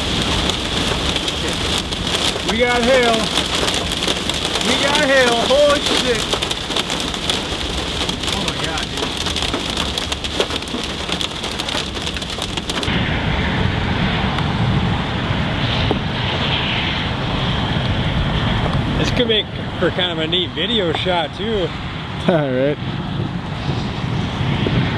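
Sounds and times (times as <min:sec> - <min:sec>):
hail pelting vehicle roof: 0:00.0 - 0:12.9.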